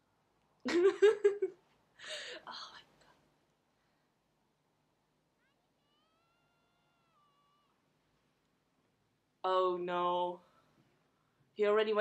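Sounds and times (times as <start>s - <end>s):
child character shouting: 5.4s - 7.8s.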